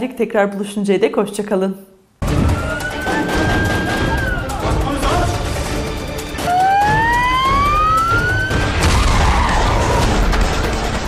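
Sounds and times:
closing theme music: 2.2 - 11.0
rising synthesized sweep: 6.4 - 8.8.

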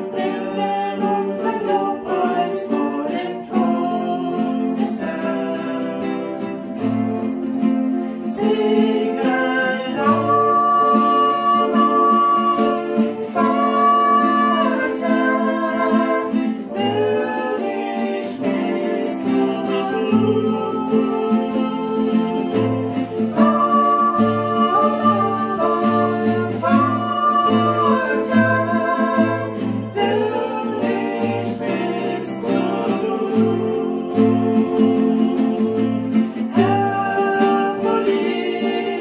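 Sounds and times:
man and woman singing: 0.0 - 7.3, 8.1 - 39.0
acoustic guitar: 0.0 - 39.0.

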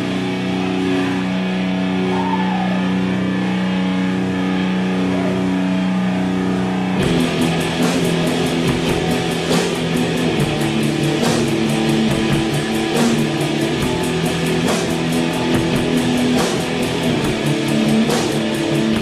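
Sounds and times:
distorted electric guitar: 0.0 - 19.0
drum beat with cymbals: 7.0 - 19.0.

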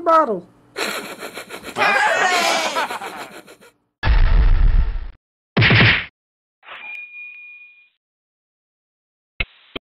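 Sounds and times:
bell-like ding: 6.7 - 7.9.

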